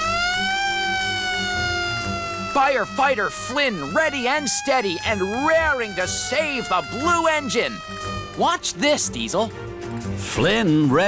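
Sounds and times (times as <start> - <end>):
fire engine siren wailing: 0.0 - 9.4.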